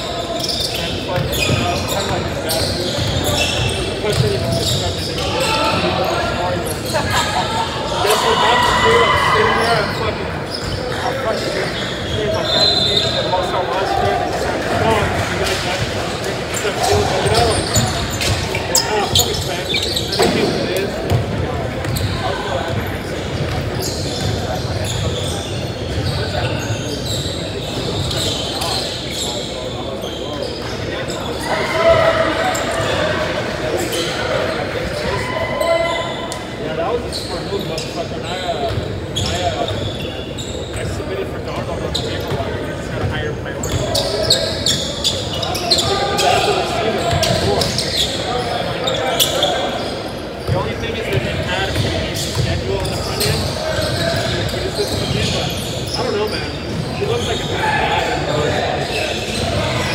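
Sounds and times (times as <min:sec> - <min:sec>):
players shouting in echoing hall: 0:00.0 - 0:40.2, 0:40.8 - 0:59.9.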